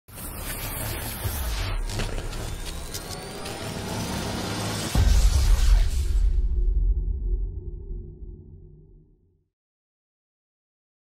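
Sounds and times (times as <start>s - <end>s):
low rumble: 4.9s - 9.1s.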